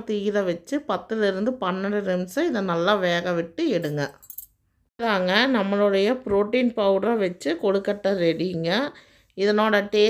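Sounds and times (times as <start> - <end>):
woman speaking: 0.0 - 4.3, 5.0 - 10.0.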